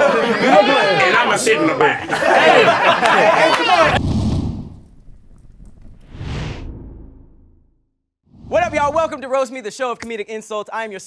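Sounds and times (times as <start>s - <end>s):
deep whooshing boom: 3.9s - 9.2s.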